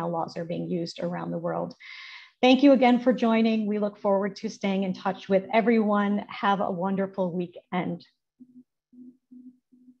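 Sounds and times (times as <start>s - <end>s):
faint low beeps: 8.4s - 10.0s.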